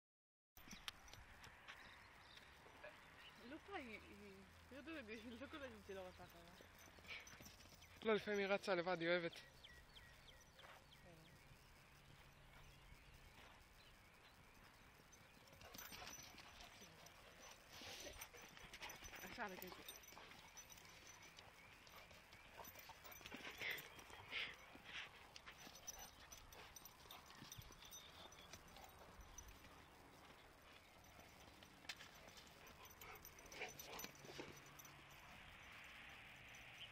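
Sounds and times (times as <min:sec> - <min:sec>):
dog footsteps on loose dirt: 0:12.0 - 0:35.0.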